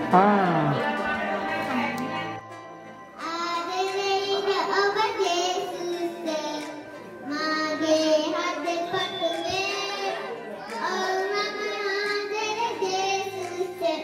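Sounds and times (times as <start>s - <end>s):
girl singing into microphone: 3.2s - 14.0s.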